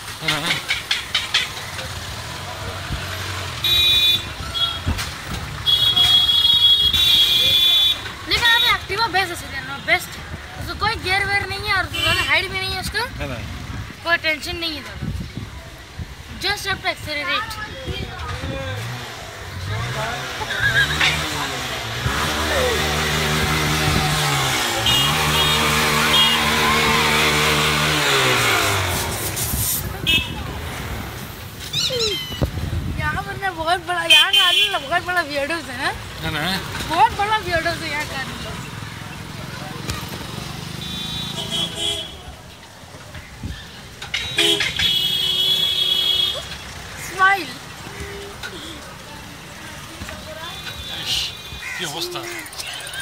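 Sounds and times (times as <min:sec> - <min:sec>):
voices: 0:00.0 - 0:53.0
vehicle horn honking: 0:03.6 - 0:04.9, 0:05.6 - 0:08.8, 0:24.2 - 0:28.6, 0:30.0 - 0:30.4, 0:34.1 - 0:35.0, 0:40.7 - 0:42.3, 0:44.2 - 0:46.5, 0:50.4 - 0:52.0.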